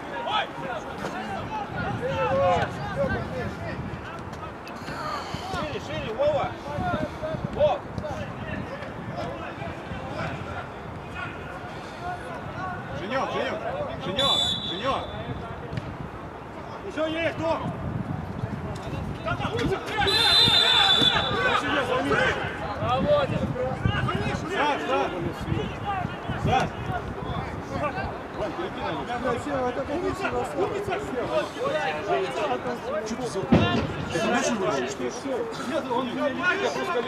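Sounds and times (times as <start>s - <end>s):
players shouting and talking: 0.0s - 37.0s
referee's whistle blasts: 14.1s - 15.4s, 20.0s - 21.6s.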